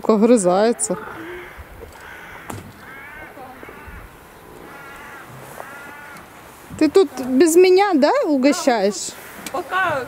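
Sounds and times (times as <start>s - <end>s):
distant crows cawing: 0.6s - 6.5s, 8.9s - 10.0s.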